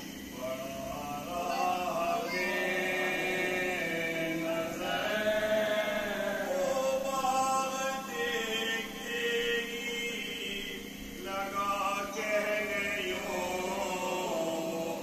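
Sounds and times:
men's chorus chanting: 0:00.0 - 0:15.0
man chanting into microphone: 0:00.3 - 0:15.0.

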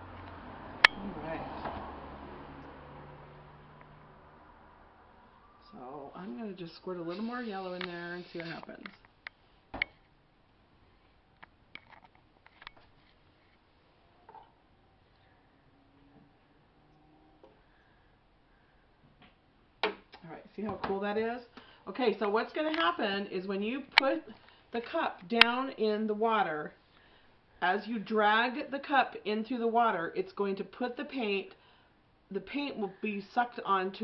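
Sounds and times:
woman speaking: 0:05.6 - 0:09.0, 0:20.2 - 0:26.8, 0:27.6 - 0:31.6, 0:32.3 - 0:34.0.

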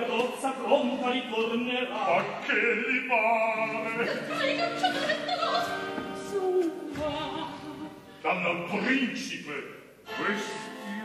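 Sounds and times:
operatic singing: 0:00.0 - 0:08.9.

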